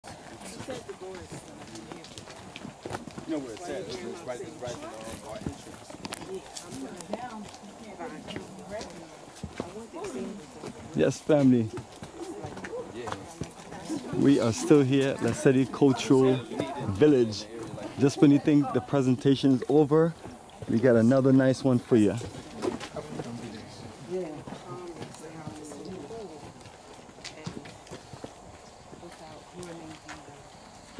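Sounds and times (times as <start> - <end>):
indistinct group talking: 0.0 - 30.9
man talking: 14.2 - 22.3.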